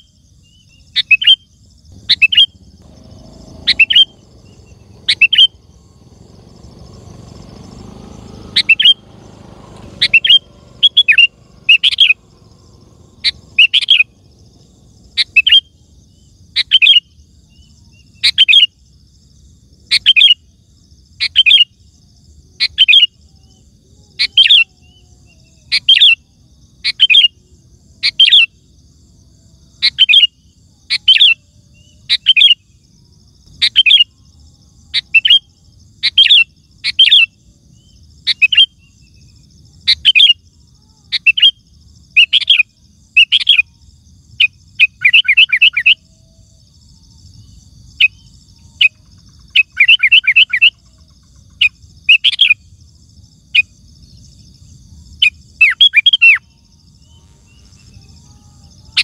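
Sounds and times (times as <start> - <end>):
bulbul singing: 0.0 - 19.0, 19.8 - 59.0.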